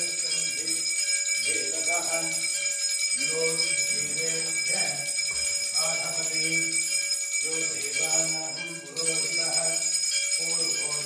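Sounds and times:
man chanting: 0.0 - 2.6, 3.2 - 11.0
brass hand bell ringing: 0.0 - 11.0.

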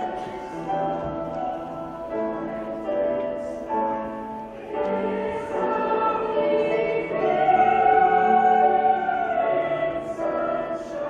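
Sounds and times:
choir singing sustained notes: 0.0 - 11.0.

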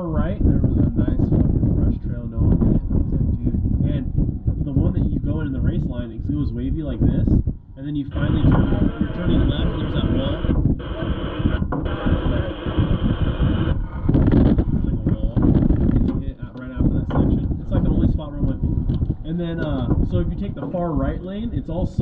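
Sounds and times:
muffled voices: 0.0 - 22.0
race car engine rumbling: 0.0 - 22.0
loud radio hiss: 8.0 - 14.0.

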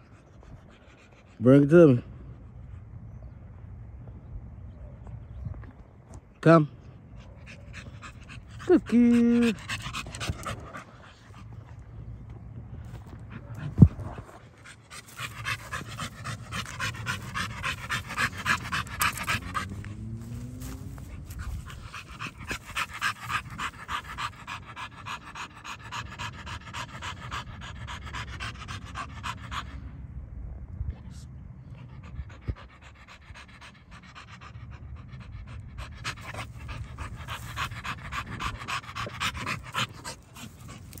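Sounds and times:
dog panting hard: 7.2 - 29.9, 31.6 - 41.0.

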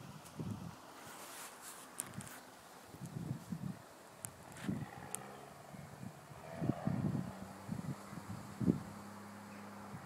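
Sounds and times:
wind buffeting microphone: 0.0 - 1.0, 2.0 - 10.0
distant engine hum: 0.0 - 10.0.

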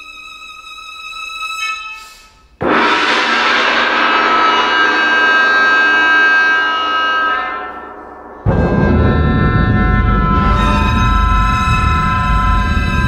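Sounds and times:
chamber music oboe violin percussion: 0.0 - 2.6, 4.8 - 13.0.

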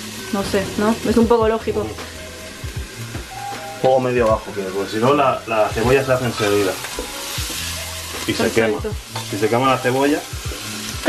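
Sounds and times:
background music: 0.0 - 11.0
onion sizzling in oil: 0.0 - 11.0.

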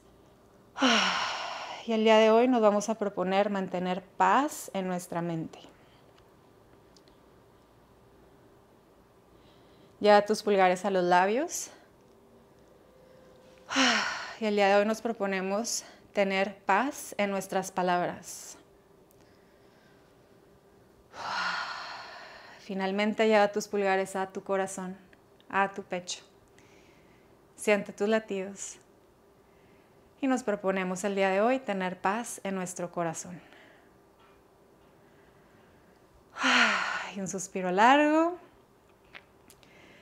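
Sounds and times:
woman sighing: 0.8 - 1.8, 13.7 - 14.4, 36.4 - 37.2
woman breathing out: 0.8 - 1.9, 13.7 - 14.4, 21.1 - 22.6, 36.4 - 37.2.

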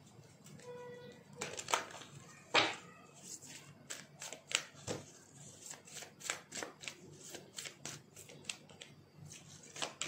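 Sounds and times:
cards being shuffled: 3.2 - 10.0.

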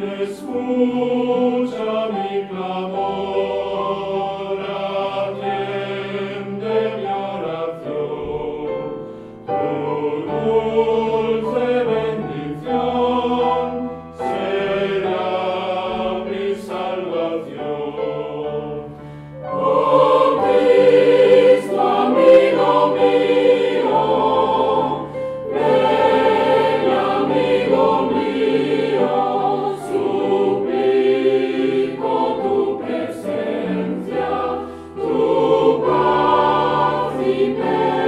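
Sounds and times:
mixed choir singing: 0.0 - 38.0.

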